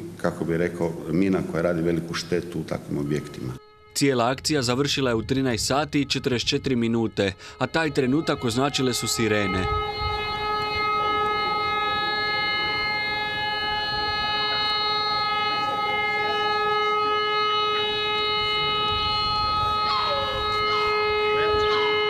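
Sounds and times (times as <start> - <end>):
siren steady tone: 3.2 - 22.0.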